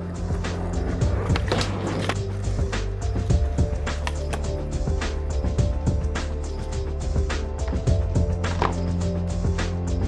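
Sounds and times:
skateboard wheels rolling on concrete: 0.0 - 9.7
music: 0.0 - 10.0.

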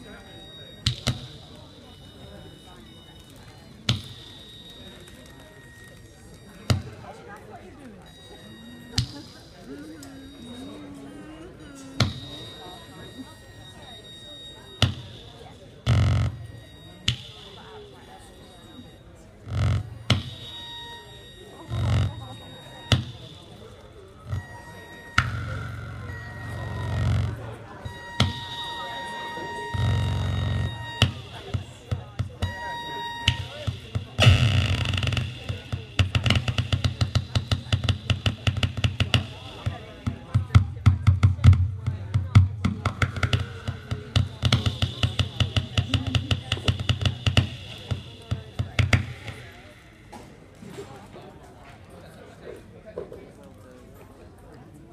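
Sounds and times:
high-pitched electronic tones: 0.0 - 40.5
short beeps: 0.0 - 50.3.

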